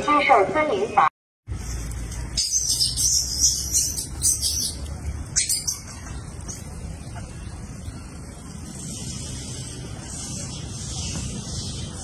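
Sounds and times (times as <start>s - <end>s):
birds chirping: 0.2s - 12.0s.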